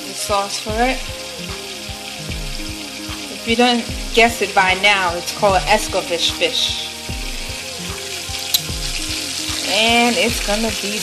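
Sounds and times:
background music with steady beat: 0.0s - 11.0s
onions and peppers sizzling: 0.0s - 11.0s.

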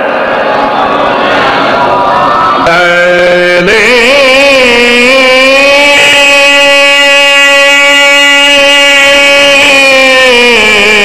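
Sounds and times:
person chanting into a microphone: 2.6s - 11.0s.

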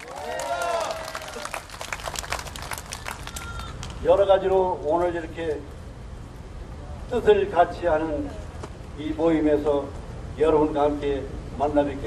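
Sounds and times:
crowd applause: 0.0s - 4.0s.

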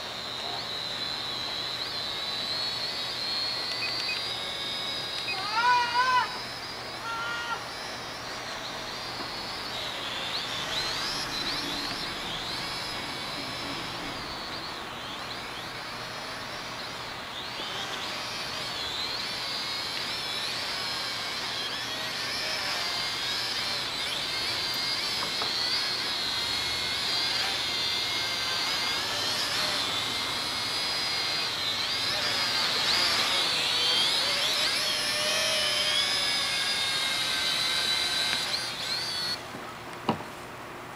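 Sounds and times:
quadcopter motors whining: 0.0s - 40.4s.

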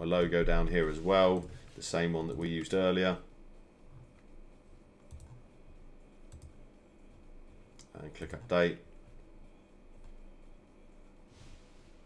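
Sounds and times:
computer mouse clicks: 5.0s - 5.4s, 6.3s - 6.6s, 7.8s - 8.5s.

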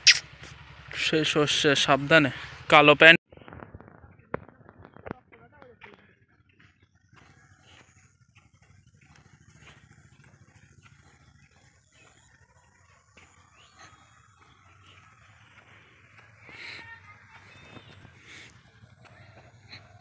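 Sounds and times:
short animal call: 0.0s - 0.2s
footsteps on concrete: 4.8s - 20.0s.

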